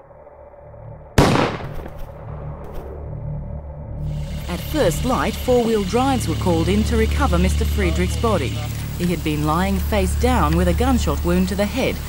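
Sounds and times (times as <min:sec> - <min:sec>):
low steady drone: 0:00.0 - 0:12.0
gunshot: 0:01.2 - 0:02.9.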